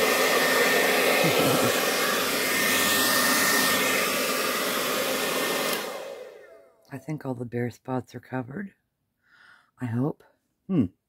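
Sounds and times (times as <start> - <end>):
hair dryer blowing: 0.0 - 6.8.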